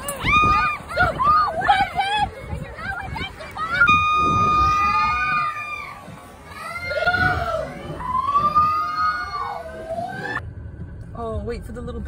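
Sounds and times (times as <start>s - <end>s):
people screaming: 0.0s - 10.4s.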